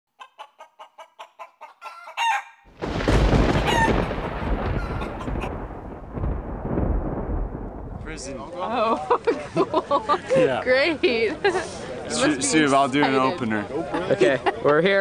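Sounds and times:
chicken clucking: 0:00.2 - 0:02.6
rooster crowing: 0:00.2 - 0:02.6, 0:03.4 - 0:05.6
thunderclap rumbling: 0:02.7 - 0:09.0.

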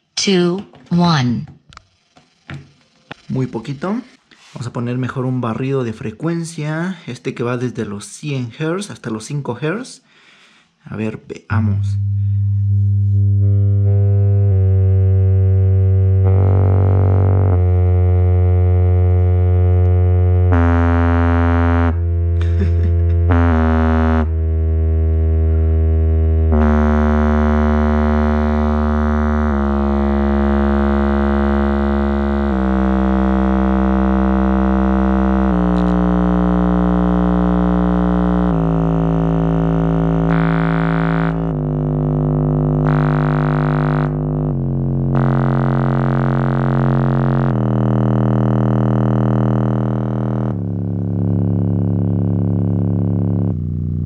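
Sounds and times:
buzzy bass test tone sweep: 0:11.0 - 0:54.0.

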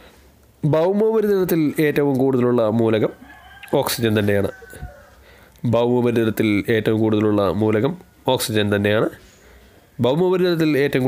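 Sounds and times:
man speaking: 0:00.6 - 0:04.7, 0:05.6 - 0:09.3, 0:10.0 - 0:11.0.

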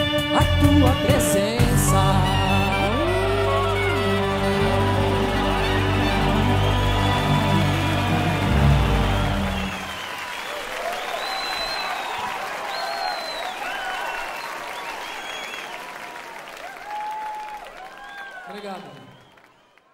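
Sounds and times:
band playing held chord: 0:00.0 - 0:10.1
crowd cheering: 0:02.0 - 0:19.9
audience applauding: 0:02.9 - 0:19.9.

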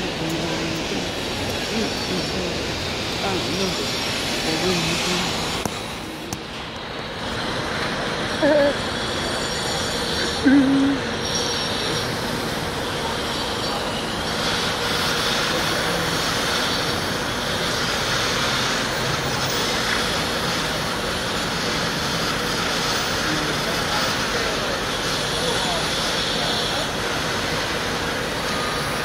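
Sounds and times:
city traffic: 0:00.0 - 0:29.0
construction machinery: 0:00.0 - 0:29.0.

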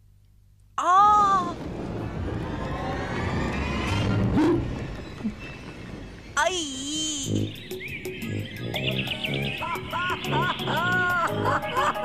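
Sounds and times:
low rumbling suspense drone: 0:01.4 - 0:06.4.

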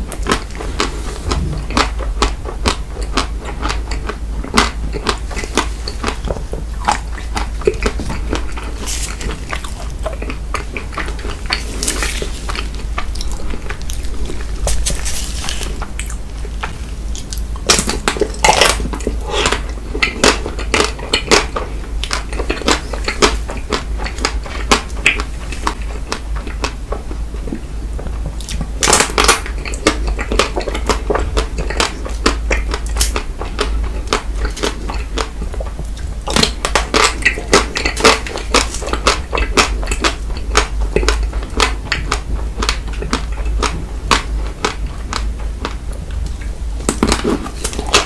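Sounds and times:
crunching chocolate-coated ice cream: 0:00.0 - 0:48.0.

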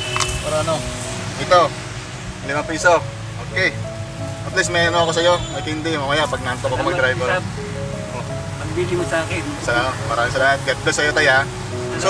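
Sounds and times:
background music: 0:00.0 - 0:12.0
low steady car hum: 0:00.0 - 0:12.0
voices talking: 0:00.0 - 0:12.0.

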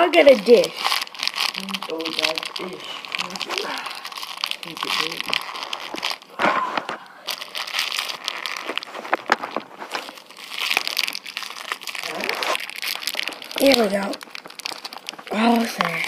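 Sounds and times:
crinkling and rustling of hands: 0:00.2 - 0:16.0.

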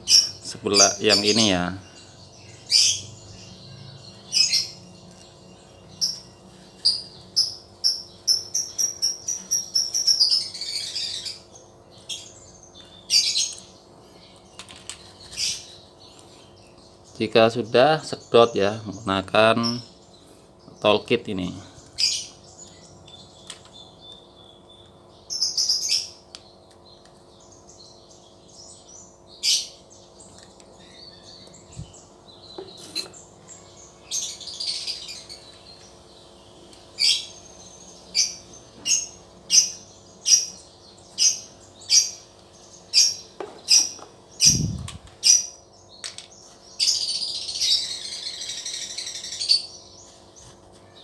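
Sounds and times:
small birds chirping: 0:00.0 - 0:51.0.

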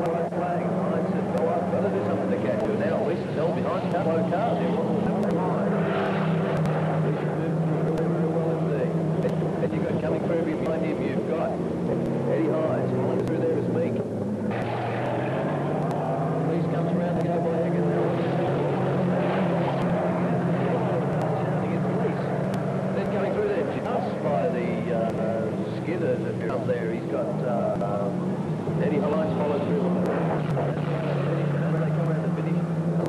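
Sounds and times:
faint voices: 0:00.0 - 0:33.0
racing car engines: 0:00.0 - 0:33.0.

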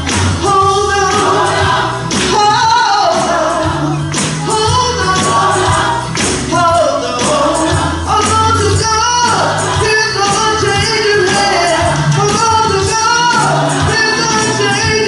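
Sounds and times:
band accompaniment: 0:00.0 - 0:15.0
gospel choir singing: 0:00.0 - 0:15.0
lead voice singing: 0:00.0 - 0:15.0.

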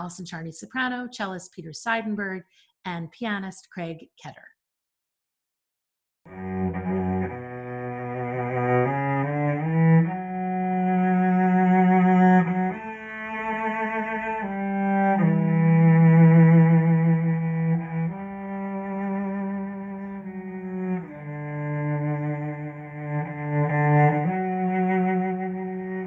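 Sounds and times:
bowed cello melody: 0:06.3 - 0:26.0.

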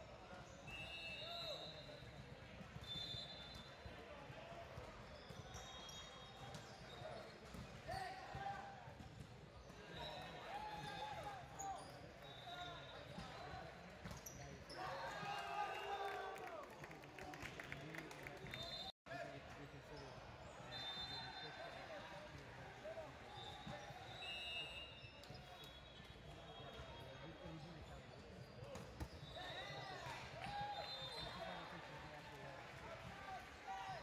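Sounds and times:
players shouting calls: 0:14.7 - 0:16.6.

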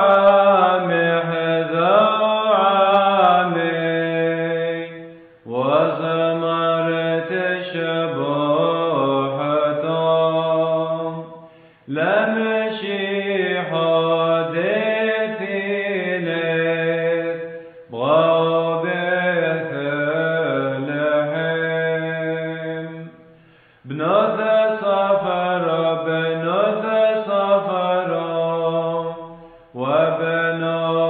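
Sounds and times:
person chanting a hymn: 0:00.0 - 0:31.0.

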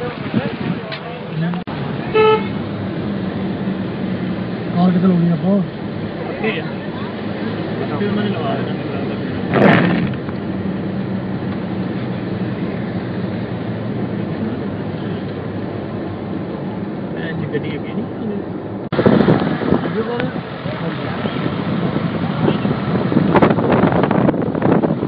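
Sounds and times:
car engine hum: 0:00.0 - 0:25.0
tyres on wet road: 0:00.0 - 0:25.0.

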